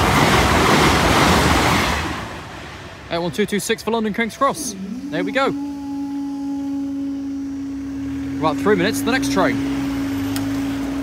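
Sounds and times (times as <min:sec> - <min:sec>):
level crossing alarm tone: 0:04.5 - 0:11.0.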